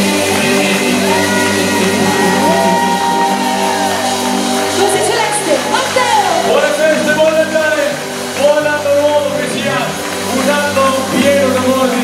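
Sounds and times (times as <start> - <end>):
man and woman singing duet: 0.0 - 4.0
live band music: 0.0 - 12.0.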